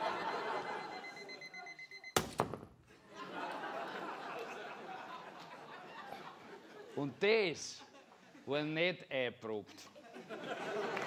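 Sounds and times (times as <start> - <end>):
audience laughing: 0.0 - 1.8, 2.9 - 8.5, 9.9 - 11.0
high electronic alarm tone: 0.2 - 2.3.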